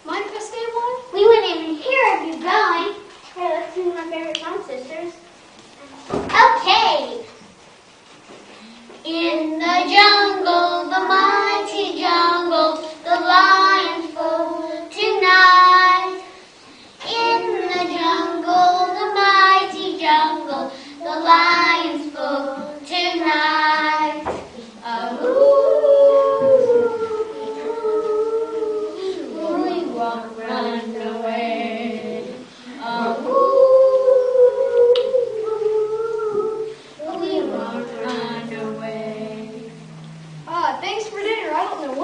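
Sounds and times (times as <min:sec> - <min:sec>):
children singing: 0:09.0 - 0:16.4, 0:17.0 - 0:40.6.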